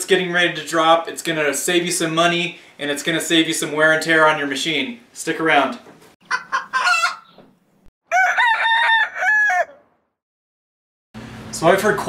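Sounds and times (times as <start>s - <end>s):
rooster crowing: 6.3s - 7.3s, 8.0s - 10.1s.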